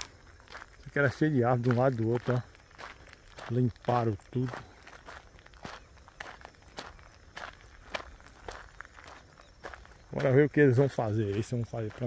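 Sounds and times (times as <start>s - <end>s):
footsteps on dirt road: 0.0s - 12.0s.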